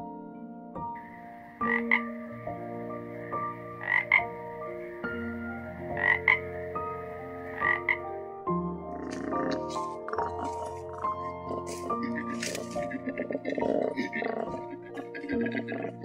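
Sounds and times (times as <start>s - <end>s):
frog croaking: 1.0s - 16.0s.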